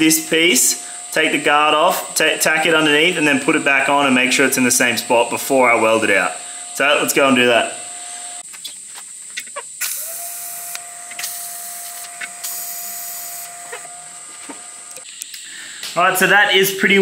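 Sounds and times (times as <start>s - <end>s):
welding arc hissing: 9.6s - 16.2s.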